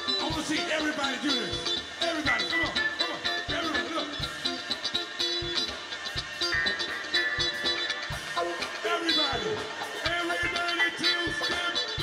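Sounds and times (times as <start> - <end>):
live band playing dance music: 0.0 - 12.0.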